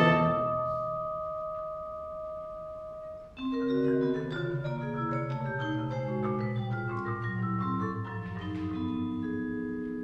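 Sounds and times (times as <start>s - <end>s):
vibraphone note ringing: 0.0s - 10.0s.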